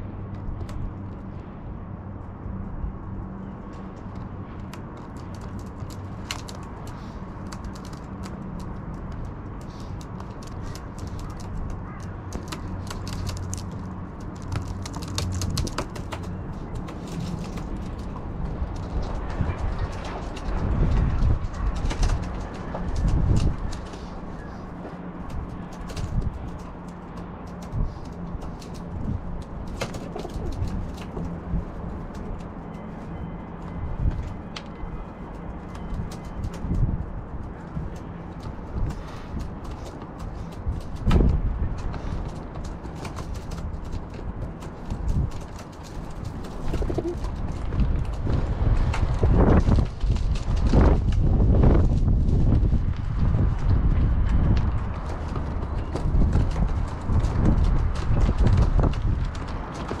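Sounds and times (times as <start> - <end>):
wind buffeting microphone: 0.0 - 60.0
pigeons pecking on plastic tray: 4.6 - 18.7, 37.6 - 50.8.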